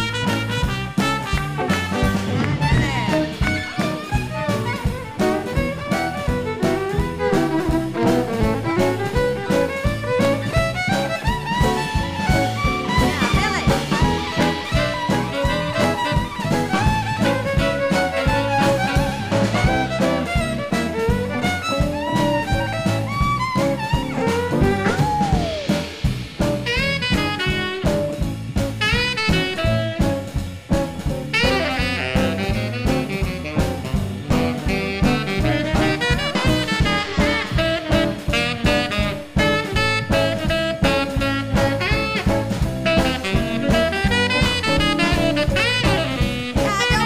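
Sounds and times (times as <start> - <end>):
bass: 0.0 - 47.0
drum kit beat: 0.0 - 47.0
saxophone: 0.0 - 47.0.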